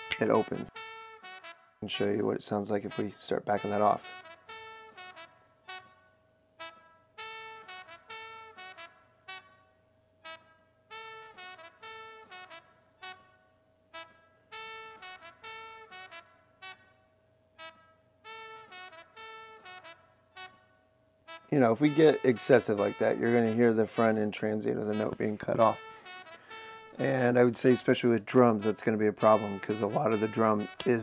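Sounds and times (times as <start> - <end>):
choppy trumpet notes: 0.0 - 6.0, 6.6 - 9.5, 10.2 - 13.4, 14.0 - 16.8, 17.6 - 20.6, 21.3 - 31.0
faint steady tone: 16.3 - 31.0.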